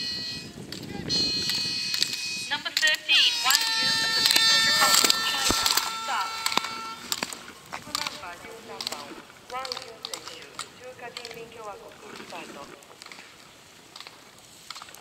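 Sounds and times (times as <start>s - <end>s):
slalom gate poles clacking: 0.0s - 15.0s.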